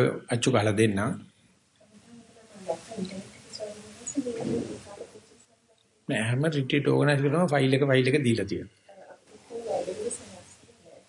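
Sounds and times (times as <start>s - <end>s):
doves cooing: 2.1s - 5.4s, 9.0s - 11.0s.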